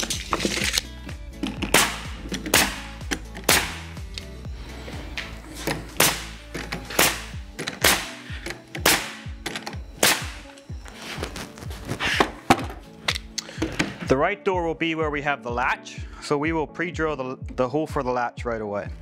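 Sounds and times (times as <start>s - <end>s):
nail gun firing: 1.7s - 2.9s, 3.5s - 3.9s, 6.0s - 9.3s, 10.0s - 10.4s.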